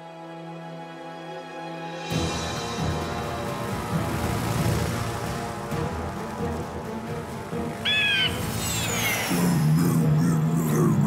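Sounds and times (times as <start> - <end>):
cartoon background music: 0.0 - 11.0
short bird-like cry: 7.8 - 9.3.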